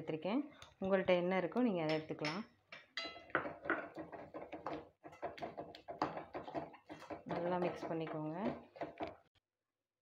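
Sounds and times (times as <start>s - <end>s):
ladle scraping a metal pan: 3.9s - 9.1s.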